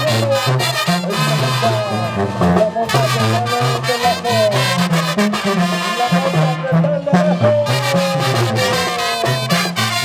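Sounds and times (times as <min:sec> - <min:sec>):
upbeat brass band music: 0:00.0 - 0:10.0.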